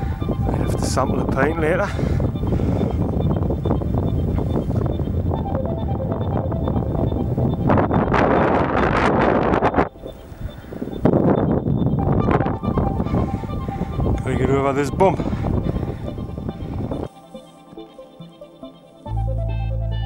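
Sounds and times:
wind buffeting microphone: 0:00.0 - 0:17.8.

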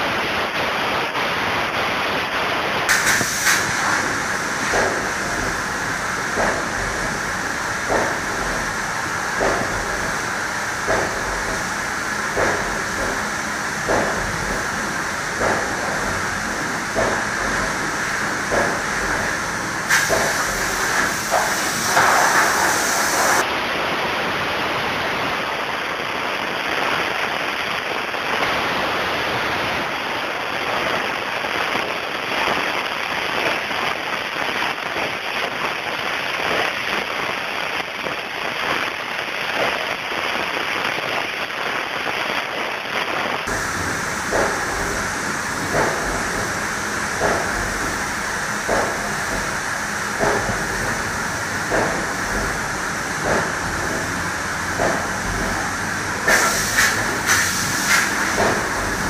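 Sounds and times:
spray gun hissing: 0:02.9 - 0:23.4, 0:43.5 - 0:59.0.

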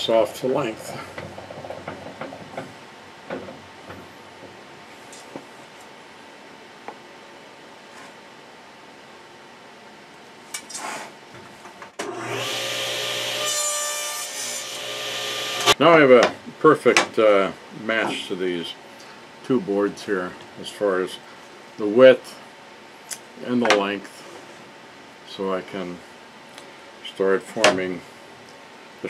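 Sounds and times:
table saw cutting wooden board: 0:12.0 - 0:15.8.

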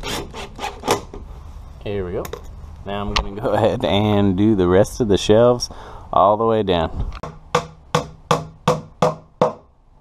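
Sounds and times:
hammer driving a nail into wood: 0:00.2 - 0:01.2, 0:07.2 - 0:09.7.

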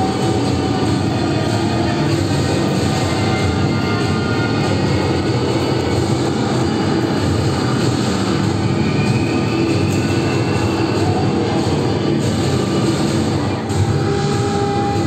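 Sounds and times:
faint music: 0:00.0 - 0:15.0
loud rumbling din: 0:00.0 - 0:15.0.

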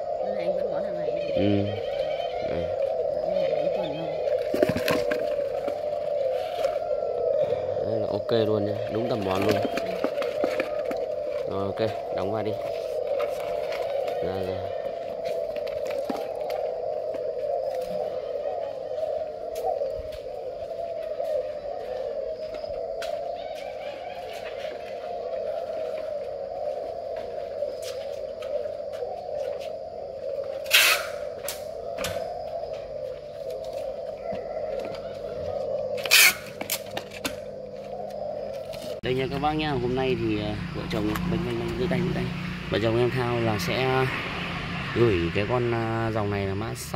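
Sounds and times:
doves cooing: 0:00.0 - 0:46.9.

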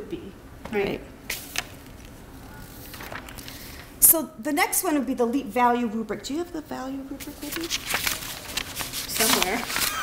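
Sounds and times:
paper sheets rustling: 0:01.3 - 0:03.9, 0:07.2 - 0:10.0.

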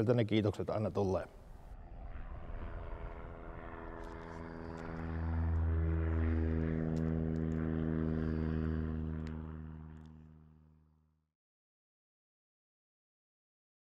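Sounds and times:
propeller plane flying by: 0:00.0 - 0:11.3.

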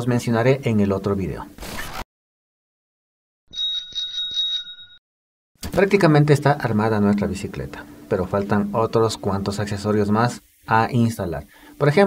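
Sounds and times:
bicycle bell ringing: 0:03.5 - 0:05.0.

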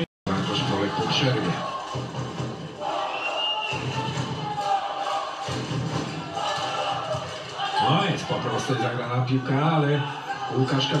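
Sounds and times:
crowd noise: 0:00.0 - 0:11.0
rhythmic arena music: 0:00.0 - 0:11.0
referee whistle: 0:03.0 - 0:04.1.

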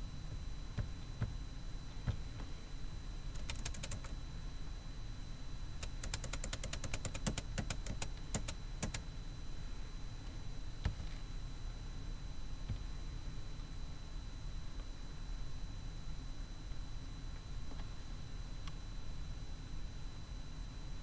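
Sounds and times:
low steady hum: 0:00.0 - 0:21.0
computer keyboard typing: 0:03.3 - 0:04.1, 0:05.8 - 0:09.0.

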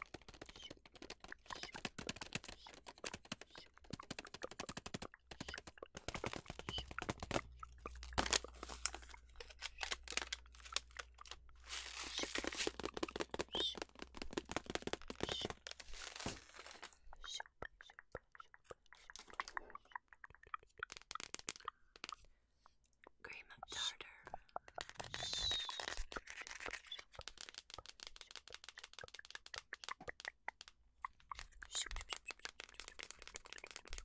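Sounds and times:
plastic packaging crinkling: 0:00.0 - 0:17.0, 0:24.8 - 0:29.3.

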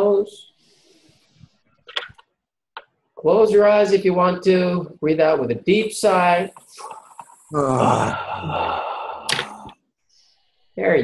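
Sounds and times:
person sighing deeply: 0:07.5 - 0:09.8.

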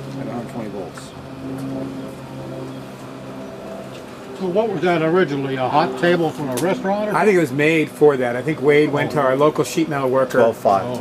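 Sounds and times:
low motor hum: 0:00.0 - 0:11.0.

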